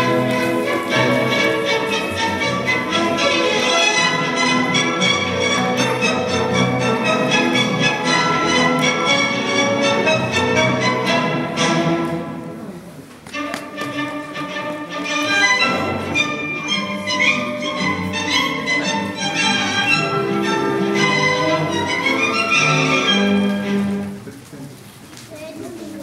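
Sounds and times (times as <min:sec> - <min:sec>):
orchestral dance music with violins: 0:00.0 - 0:12.1, 0:13.3 - 0:24.0.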